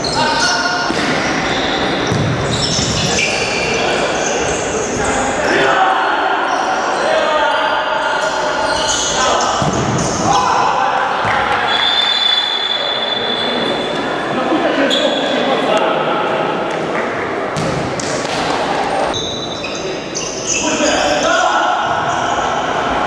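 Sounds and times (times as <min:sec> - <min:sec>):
ball kicked and bouncing: 0:02.1 - 0:02.4, 0:17.6 - 0:18.4
players shouting: 0:04.0 - 0:13.7.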